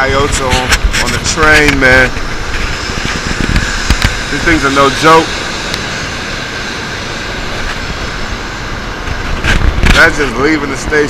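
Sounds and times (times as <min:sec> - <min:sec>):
train rushing rumble: 0:00.0 - 0:11.0.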